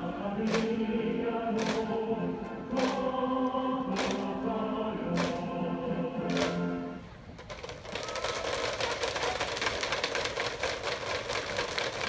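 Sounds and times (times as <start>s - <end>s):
crowd applauding: 7.6s - 12.0s.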